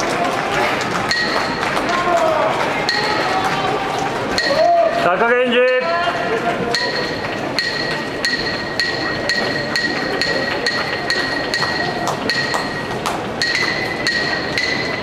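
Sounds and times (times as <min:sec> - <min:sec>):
wooden clappers clacking: 0:00.0 - 0:15.0.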